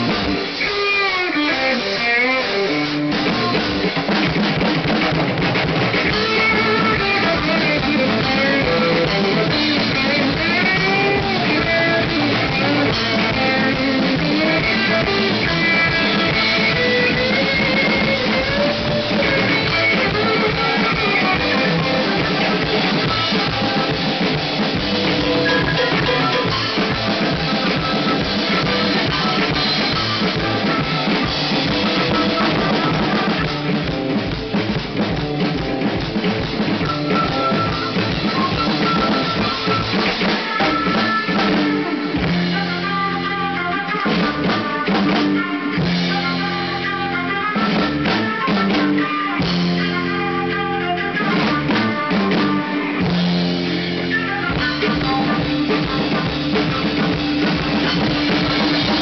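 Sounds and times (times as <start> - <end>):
drum kit playing rock pattern: 0.0 - 59.0
rock recording with electric guitar: 0.0 - 59.0.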